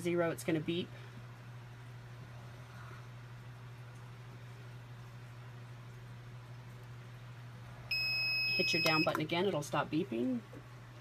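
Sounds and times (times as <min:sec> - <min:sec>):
faint room noise: 0:00.0 - 0:11.0
steady low hum: 0:00.0 - 0:11.0.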